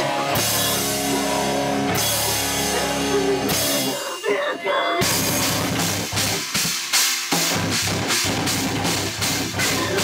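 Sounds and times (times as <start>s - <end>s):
distorted electric guitars chugging: 0.0s - 10.0s
drum kit with cymbals: 0.0s - 10.0s.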